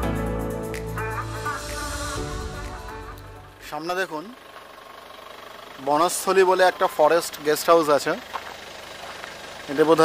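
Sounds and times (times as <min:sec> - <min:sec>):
vehicle engine idling: 0:01.0 - 0:10.0.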